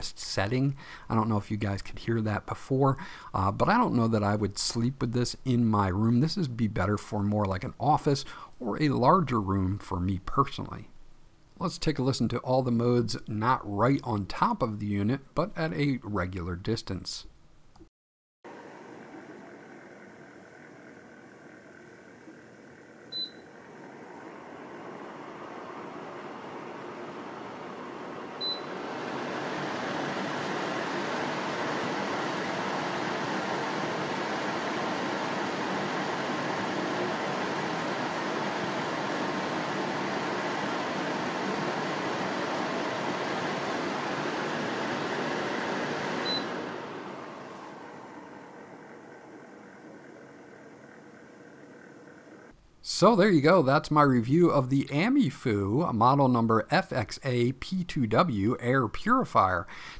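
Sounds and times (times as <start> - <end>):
air purifier fan whooshing: 18.5 - 53.0
short touch panel beeps: 23.1 - 23.5, 28.4 - 28.7, 46.2 - 46.5.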